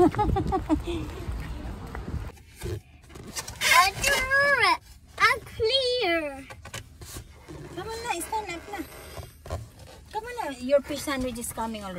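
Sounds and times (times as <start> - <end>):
outdoor background noise: 0.0 - 11.9.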